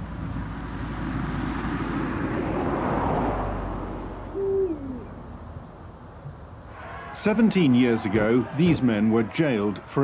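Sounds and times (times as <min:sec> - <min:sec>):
owl hooting: 0:04.3 - 0:05.2.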